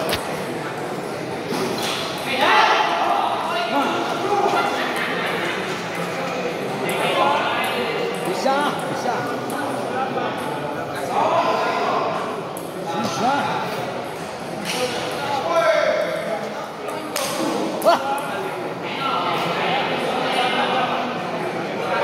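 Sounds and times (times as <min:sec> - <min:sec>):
voices of players and spectators: 0:00.0 - 0:22.0.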